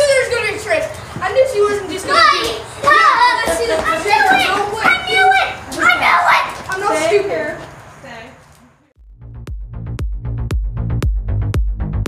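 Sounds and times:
children talking and calling out: 0.0s - 8.8s.

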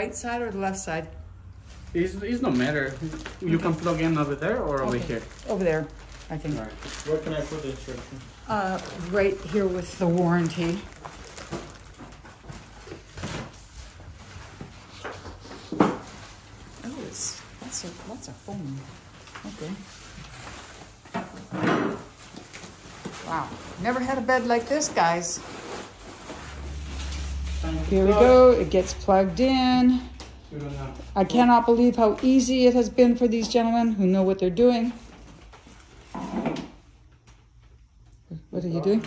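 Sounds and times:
scrape or rustle: 22.0s - 28.4s.

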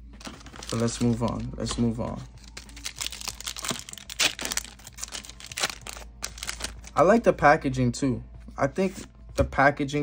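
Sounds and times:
foil pack tearing and crinkling: 2.4s - 6.9s.

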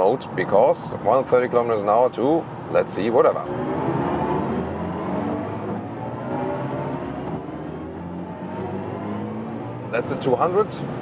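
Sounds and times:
road and wind noise: 0.0s - 11.0s
electric car drive tone rising: 3.4s - 9.9s.

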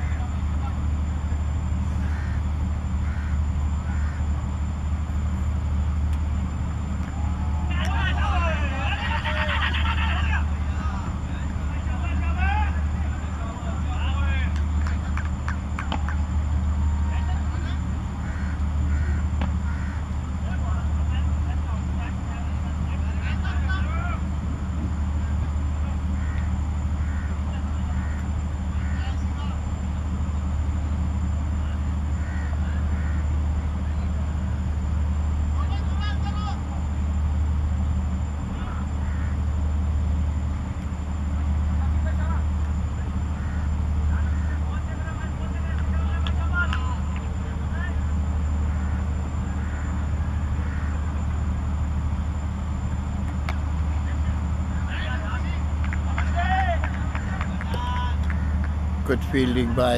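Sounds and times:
distant voices calling: 0.0s - 59.9s
steady low rumble: 0.0s - 59.9s.

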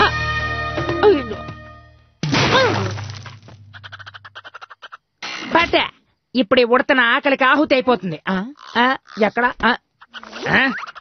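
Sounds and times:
pine cones crashing down: 2.2s - 3.8s.

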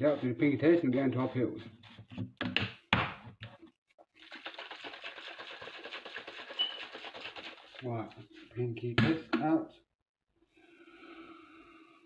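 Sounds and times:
shaker bottle rattling and sloshing: 4.2s - 8.5s.

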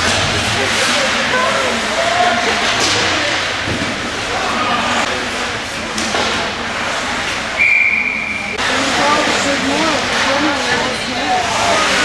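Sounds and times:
crowd chatter: 0.0s - 12.0s
shrill referee whistle blast: 7.6s - 8.6s.

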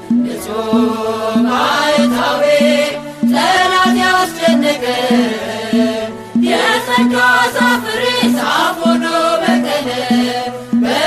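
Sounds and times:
steady repeating beat: 0.0s - 11.0s
person singing a chant-like melody: 0.1s - 11.0s.

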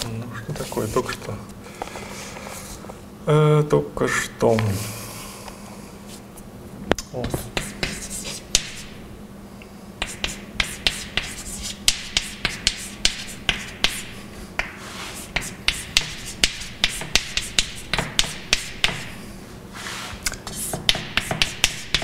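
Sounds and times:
chalk tapping and scratching: 7.2s - 9.0s, 10.0s - 19.2s, 19.8s - 22.0s.

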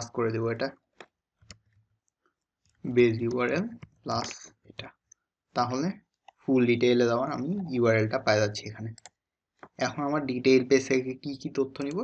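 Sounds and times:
man speaking: 0.0s - 0.7s, 2.9s - 4.5s, 5.6s - 9.0s, 9.8s - 12.0s
keyboard clicks: 2.9s - 4.8s, 11.5s - 12.0s.

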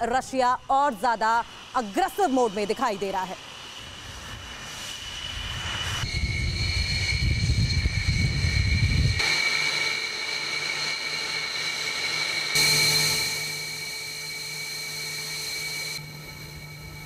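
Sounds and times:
high turbine whine: 0.0s - 17.0s
jet engine rumble: 0.0s - 17.0s.

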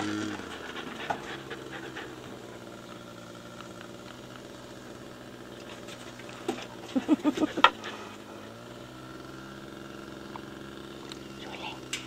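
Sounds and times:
distant model plane engine drone: 0.0s - 12.0s.

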